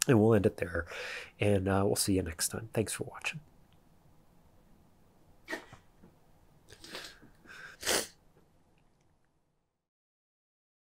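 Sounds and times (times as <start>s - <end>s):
man breathing: 0.9s - 1.4s, 6.8s - 8.2s
sharp puff of breath: 6.8s - 8.2s.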